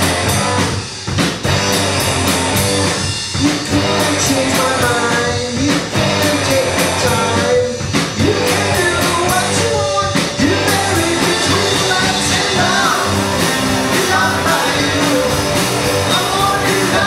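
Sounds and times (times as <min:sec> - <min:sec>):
electric guitars: 0:00.0 - 0:09.8, 0:10.4 - 0:17.0
bass guitar: 0:00.0 - 0:17.0
drums: 0:00.0 - 0:17.0
man singing lead: 0:03.3 - 0:17.0.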